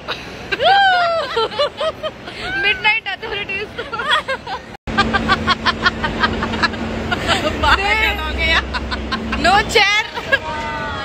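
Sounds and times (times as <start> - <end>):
steady low hum: 0.0 - 11.0
women laughing: 0.0 - 11.0
woman speaking: 7.6 - 8.8, 9.4 - 11.0.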